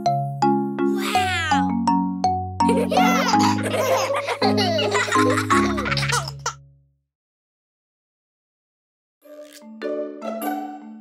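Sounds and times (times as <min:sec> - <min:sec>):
children's song music: 0:00.0 - 0:06.5, 0:09.3 - 0:11.0
young children laughing: 0:02.6 - 0:06.6.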